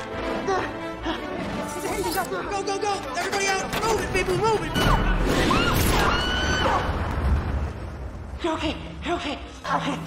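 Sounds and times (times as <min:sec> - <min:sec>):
film score music: 0:00.0 - 0:10.0
woman screaming: 0:05.5 - 0:06.9.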